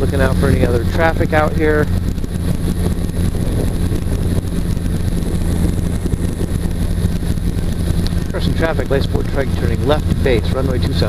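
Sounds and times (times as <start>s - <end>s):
aircraft engine and propeller drone: 0.0s - 11.0s.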